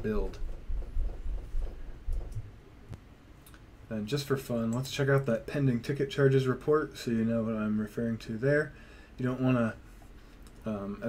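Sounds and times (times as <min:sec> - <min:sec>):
low rumbling room noise: 0:00.0 - 0:11.0
faint clicks: 0:10.0 - 0:10.7.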